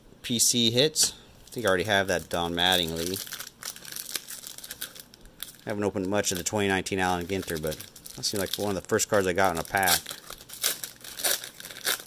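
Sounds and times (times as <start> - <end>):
foil wrapper tearing and crinkling: 1.5 - 12.0.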